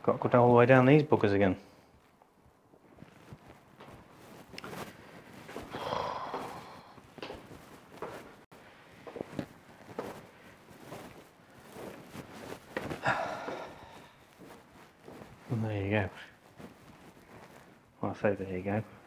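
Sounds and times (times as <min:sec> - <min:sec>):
footsteps on stone stairs: 0:03.2 - 0:15.6
loud breaths: 0:05.5 - 0:07.1, 0:12.8 - 0:14.6.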